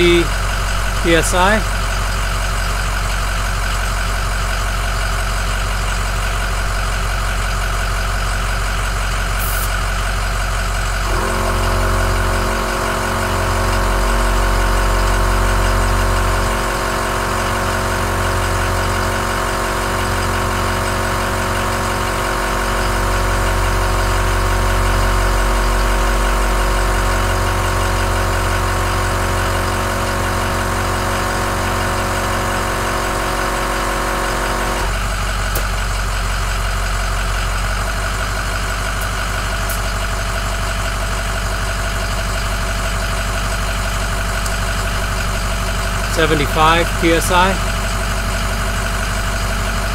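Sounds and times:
truck engine idling: 0.0 - 49.9
air compressor running: 9.1 - 49.9.

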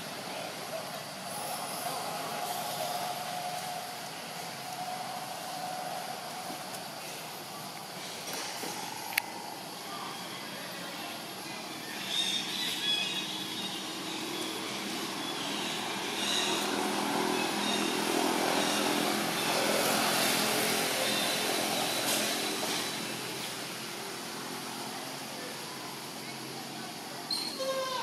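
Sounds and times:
vehicle engine passing by: 14.0 - 25.2.

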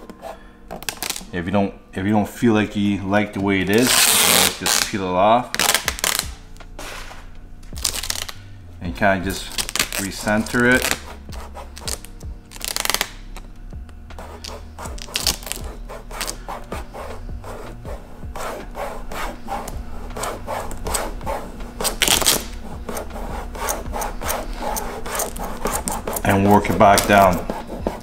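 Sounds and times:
fingers rubbing film on lens: 9.6 - 13.5, 14.1 - 28.0.

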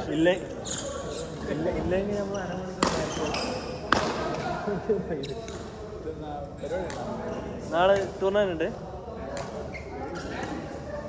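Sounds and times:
rackets striking shuttlecock: 2.8 - 4.4.

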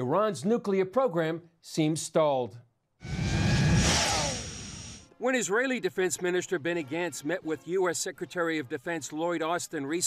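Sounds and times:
whoosh with deep rumble: 3.0 - 5.0.

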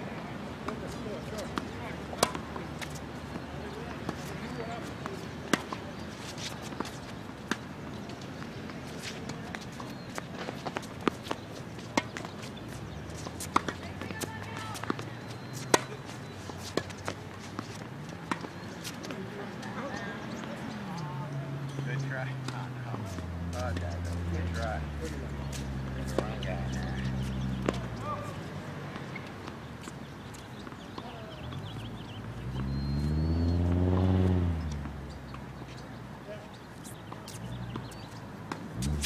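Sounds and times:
racquets striking tennis ball: 0.7 - 21.0, 25.4 - 32.7, 33.6 - 39.0
tennis ball bouncing: 0.7 - 21.0, 25.5 - 27.9, 33.6 - 36.0, 36.9 - 39.0
footsteps scuffing on court: 36.5 - 39.0.

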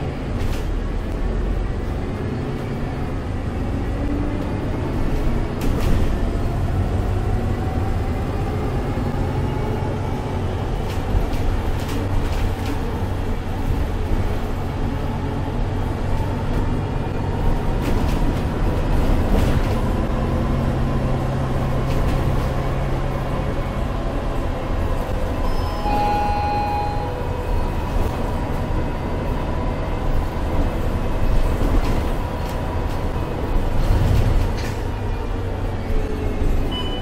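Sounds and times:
bus engine drone: 0.0 - 37.0
road noise: 0.0 - 37.0
brief high tone: 25.4 - 27.3.

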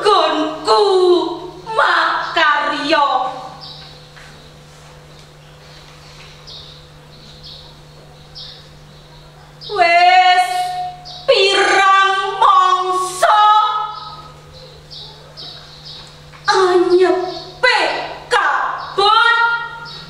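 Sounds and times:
low steady hum: 0.0 - 20.0
woman singing long notes: 11.3 - 12.5.

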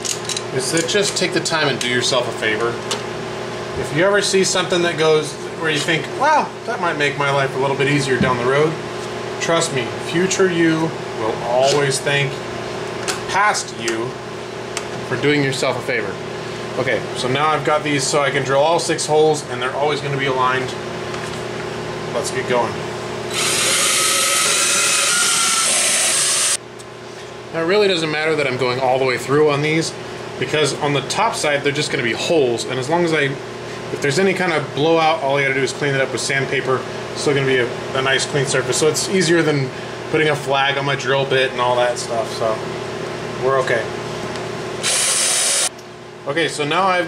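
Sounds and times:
cordless drill whirring: 23.3 - 26.6, 44.8 - 45.7
loud hissy cutting sound: 44.8 - 45.7.

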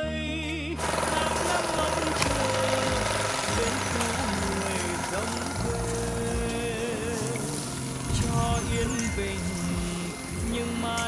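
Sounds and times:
background music: 0.0 - 11.0
motorbike engine running: 0.8 - 11.0.

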